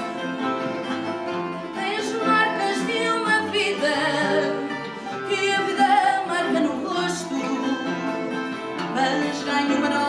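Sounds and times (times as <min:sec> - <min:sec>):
plucked guitars: 0:00.0 - 0:10.0
woman singing with vibrato: 0:01.7 - 0:10.0.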